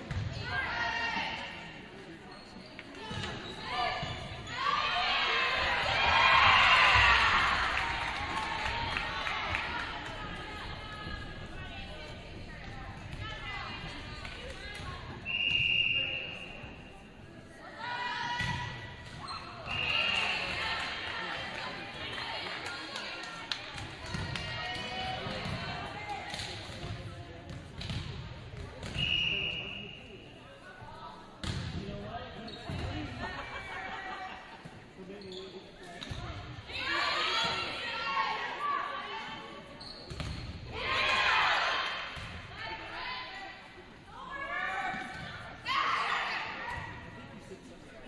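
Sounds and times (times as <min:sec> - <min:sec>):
referee whistle blasts: 0:15.2 - 0:16.7, 0:19.6 - 0:20.5, 0:28.9 - 0:30.0
volleyball hit and bouncing: 0:23.8 - 0:29.0.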